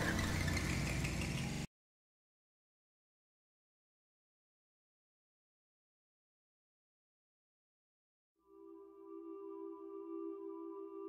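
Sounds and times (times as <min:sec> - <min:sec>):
low hum: 0:00.0 - 0:01.7.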